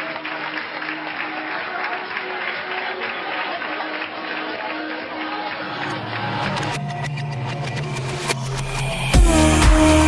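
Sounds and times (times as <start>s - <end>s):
audience applauding: 0.0s - 7.0s
music: 0.0s - 10.0s.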